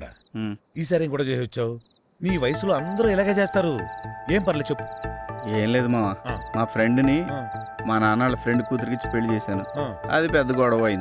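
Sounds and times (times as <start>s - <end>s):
man speaking: 0.0s - 4.8s, 5.4s - 11.0s
crickets chirping: 0.0s - 11.0s.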